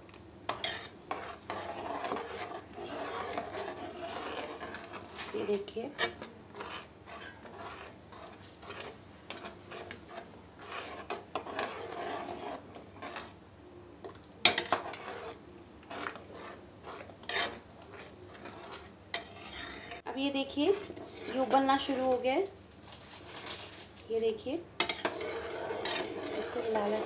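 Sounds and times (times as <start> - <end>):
metal ladle scraping metal pan: 0.5 - 13.4, 14.4 - 22.4, 24.8 - 27.0.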